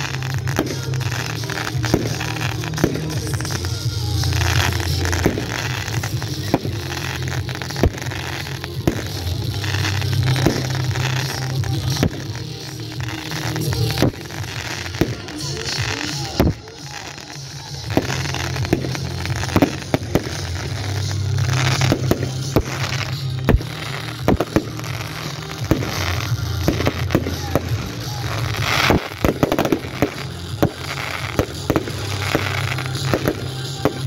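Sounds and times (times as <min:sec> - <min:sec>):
fireworks bangs and crackles: 0:00.0 - 0:34.0
music with low bass: 0:00.0 - 0:34.0.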